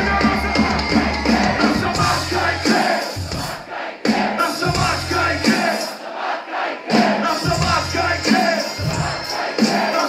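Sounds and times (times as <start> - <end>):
hip-hop beat through speakers: 0.0 - 6.0, 6.9 - 10.0
crowd shouting along: 0.0 - 10.0.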